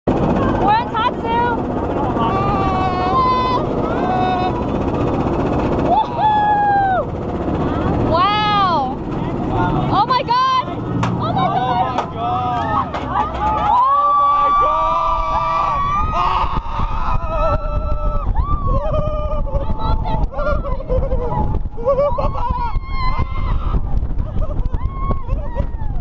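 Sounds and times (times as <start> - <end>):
roller coaster rumble: 0.1 - 26.0.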